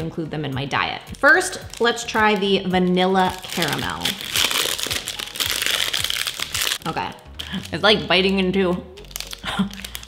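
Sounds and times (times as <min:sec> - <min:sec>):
plastic wrapper crinkling: 0:01.3 - 0:08.4, 0:09.0 - 0:10.0.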